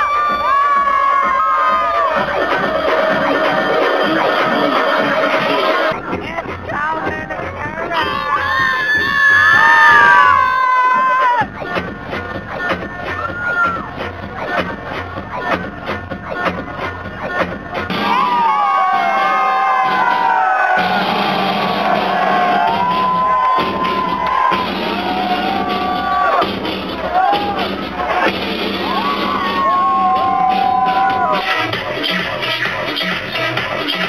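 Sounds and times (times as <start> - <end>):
crowd cheering and shouting: 0.0 - 34.0
loud club dance music: 0.0 - 34.0
high gliding shouts and whoops: 8.0 - 11.6, 17.9 - 26.4, 27.0 - 31.5.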